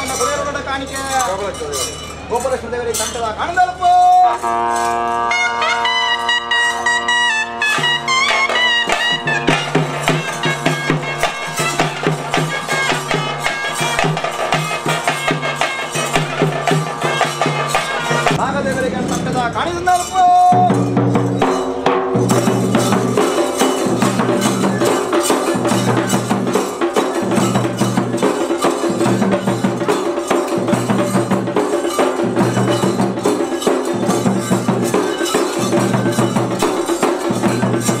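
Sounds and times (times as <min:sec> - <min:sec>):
wavering reed pipe melody: 0:04.1 - 0:18.5
steady drum strokes: 0:06.4 - 0:38.0
person's voice: 0:18.4 - 0:20.8.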